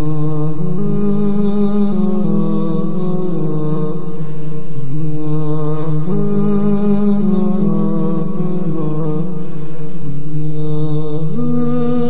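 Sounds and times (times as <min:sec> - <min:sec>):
vocal chanting with held notes: 0:00.0 - 0:12.0.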